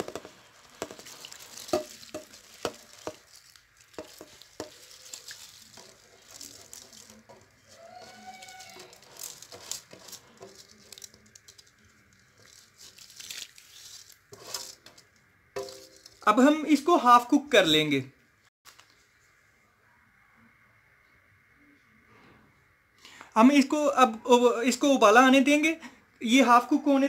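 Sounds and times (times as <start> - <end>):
light water splashes: 0.0 - 7.7
rice scraped from steel bowl: 13.9 - 15.0
bowl clinking against pot: 15.6 - 16.2.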